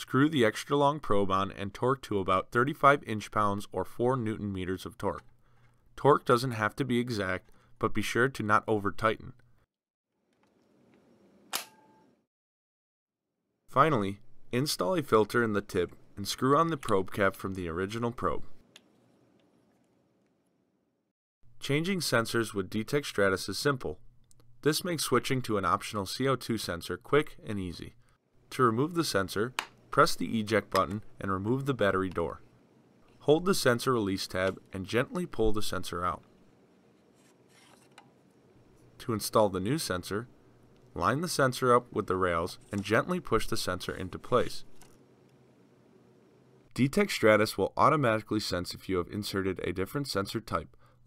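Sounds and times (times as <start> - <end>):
brief metallic ring: 11.6 - 12.1.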